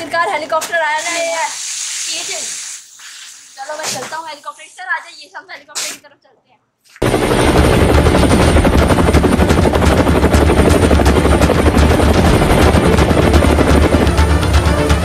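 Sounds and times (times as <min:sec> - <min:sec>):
helicopter rotor chopping: 0:07.0 - 0:15.0.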